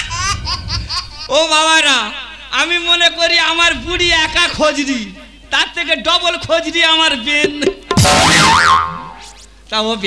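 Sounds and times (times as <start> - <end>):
comic crash sound effect: 7.8 - 9.3.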